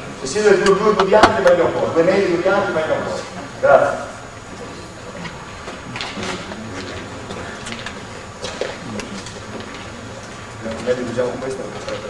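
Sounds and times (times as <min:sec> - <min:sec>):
gym hall room noise: 0:00.0 - 0:12.0.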